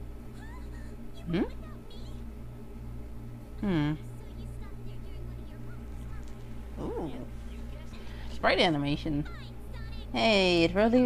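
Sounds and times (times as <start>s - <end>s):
steady low hum: 0.0s - 11.0s
person questioning mm: 3.6s - 4.0s.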